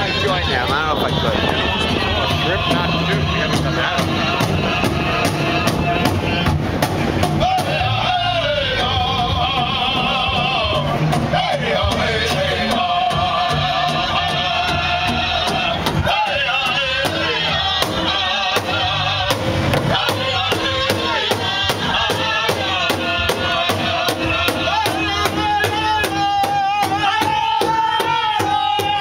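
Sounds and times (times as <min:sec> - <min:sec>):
large drum beaten with sticks: 0:00.0 - 0:29.0
men singing in high voices: 0:00.0 - 0:29.0.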